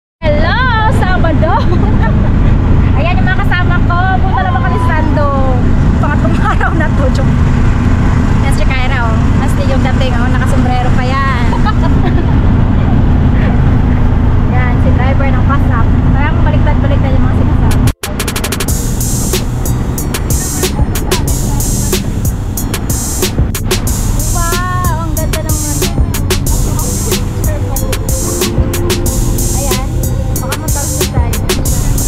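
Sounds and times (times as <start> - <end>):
auto-rickshaw rumbling: 0.2 - 32.0
women laughing: 1.3 - 2.6, 6.1 - 6.9, 11.3 - 13.0.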